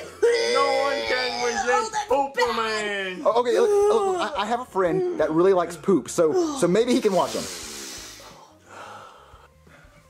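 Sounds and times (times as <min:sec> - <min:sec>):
person breathing softly: 0:07.3 - 0:10.0.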